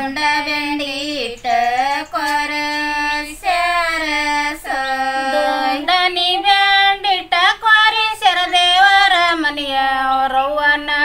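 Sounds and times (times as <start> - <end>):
women singing folk song: 0.0 - 11.0.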